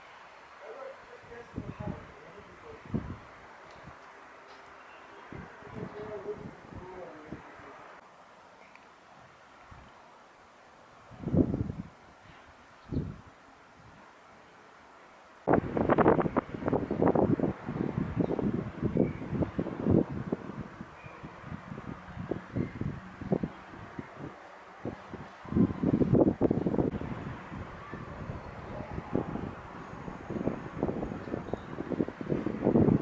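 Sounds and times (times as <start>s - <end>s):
wind buffeting microphone: 1.2s - 4.1s, 5.2s - 7.7s, 11.0s - 14.1s, 15.4s - 33.0s.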